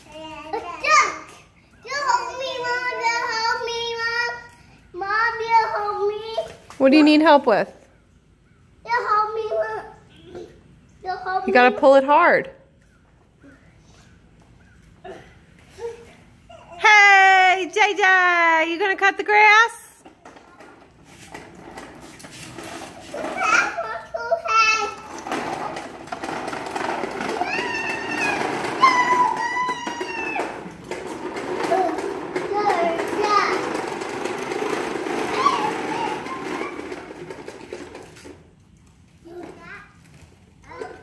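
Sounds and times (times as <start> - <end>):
toy lawn mower engine noise: 20.0 - 38.6
small child squealing and calling: 27.4 - 30.7.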